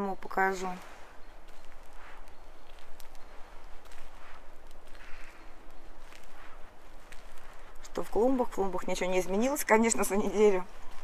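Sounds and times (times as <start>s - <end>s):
footsteps on stone path: 0.0s - 11.0s.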